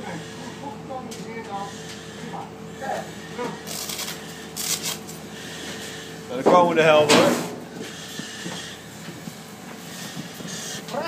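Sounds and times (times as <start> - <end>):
faint voices talking: 0.0 - 3.8
steady low hum: 0.0 - 11.0.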